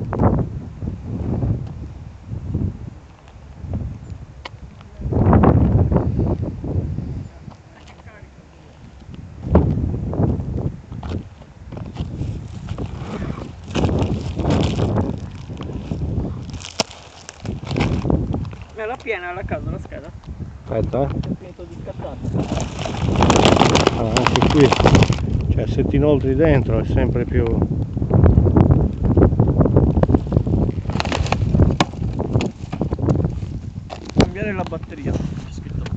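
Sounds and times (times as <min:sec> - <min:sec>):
wind buffeting microphone: 0:00.0 - 0:35.9
dry scrub rustling: 0:11.0 - 0:20.1, 0:21.3 - 0:26.3, 0:29.8 - 0:35.7.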